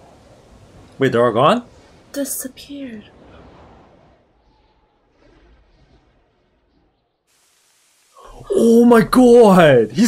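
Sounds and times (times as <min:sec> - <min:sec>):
faint hiss: 0:07.3 - 0:10.0.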